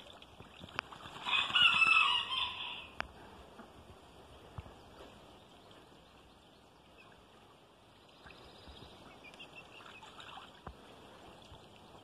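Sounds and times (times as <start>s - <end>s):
rooster crowing: 1.2s - 3.0s.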